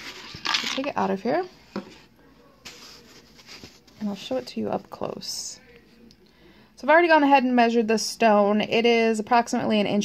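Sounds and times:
soft rustle: 0:01.5 - 0:04.8.

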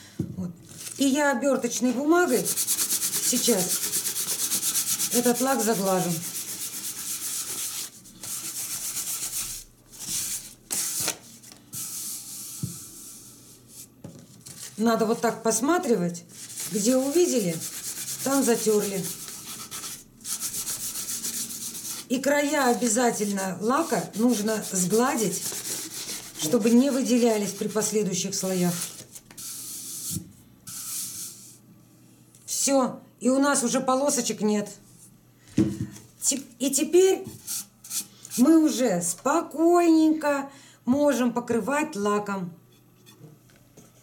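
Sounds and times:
paper rubbing on varnished surface: 0:02.3 - 0:15.3, 0:16.3 - 0:31.5.

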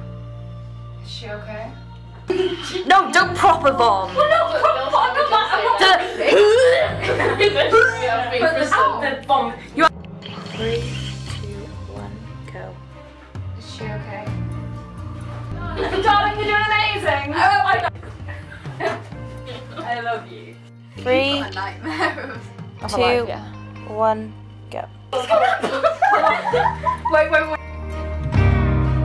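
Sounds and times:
background music low notes: 0:00.0 - 0:29.0
young women laughing and chattering: 0:02.3 - 0:09.9, 0:15.5 - 0:23.2, 0:25.1 - 0:27.6.

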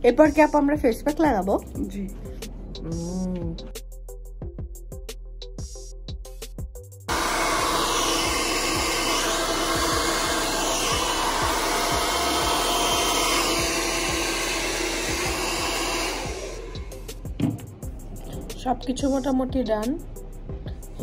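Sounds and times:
background music with a beat: 0:00.0 - 0:07.1, 0:13.6 - 0:21.0
hair dryer blowing: 0:07.1 - 0:17.6.

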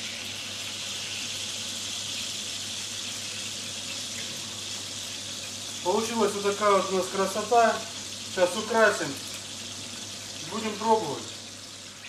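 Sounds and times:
oil sizzling in a frying pan: 0:00.0 - 0:12.0.

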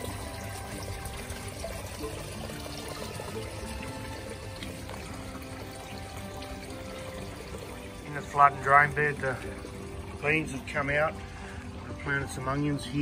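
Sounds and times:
music of held notes: 0:00.0 - 0:13.0
water trickling and pouring: 0:00.0 - 0:13.0.

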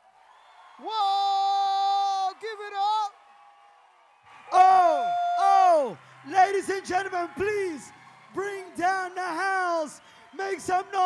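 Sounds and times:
person whooping: 0:00.8 - 0:03.0, 0:04.5 - 0:07.8.

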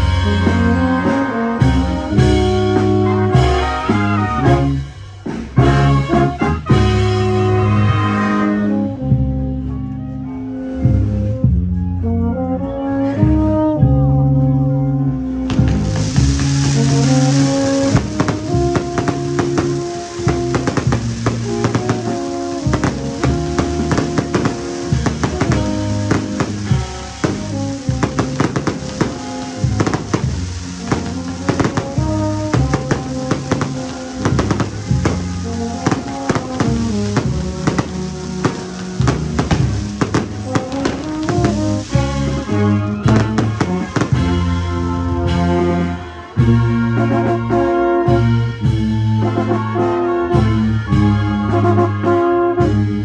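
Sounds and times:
cymbal and drum beat: 0:00.0 - 0:07.6, 0:15.5 - 0:46.8
brass chords: 0:00.0 - 0:53.0.

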